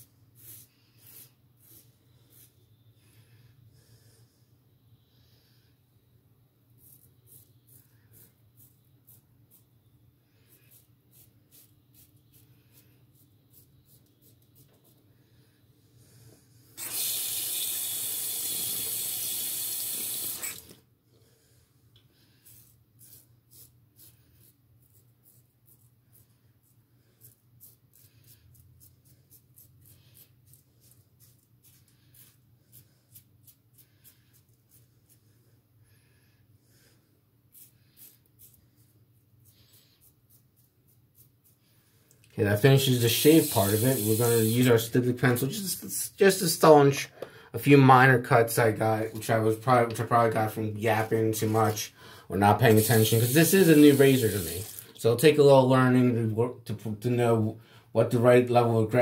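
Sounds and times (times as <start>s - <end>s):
razor scraping stubble: 10.5s - 15.0s, 22.4s - 35.2s, 37.5s - 41.6s, 52.5s - 54.9s
tap running water: 16.8s - 20.8s.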